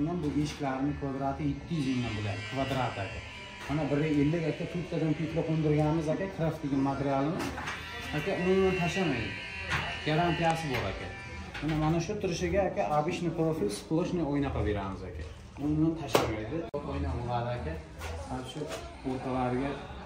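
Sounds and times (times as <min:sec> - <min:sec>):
man talking: 0:00.0 - 0:07.5
steady electrical buzz: 0:00.0 - 0:14.2.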